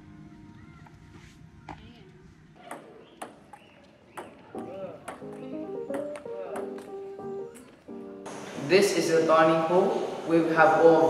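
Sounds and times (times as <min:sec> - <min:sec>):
background music: 0:04.6 - 0:11.0.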